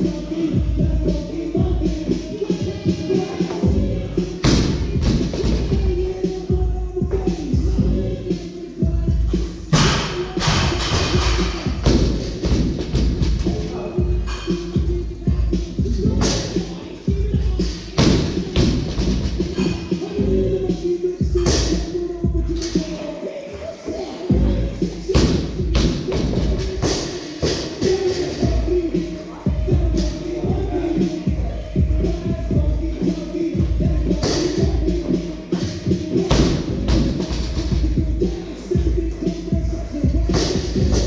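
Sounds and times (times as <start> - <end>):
background music with steady beat: 0.0 - 41.0.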